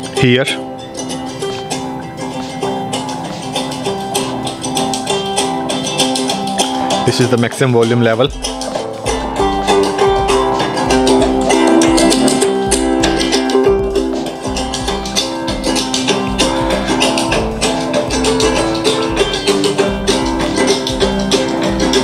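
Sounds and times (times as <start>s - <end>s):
music from portable speaker: 0.0s - 22.0s.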